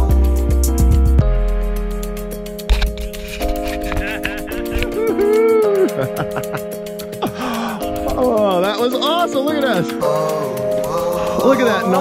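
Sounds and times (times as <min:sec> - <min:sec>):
held chords: 0:00.0 - 0:12.0
light steady percussion: 0:00.0 - 0:12.0.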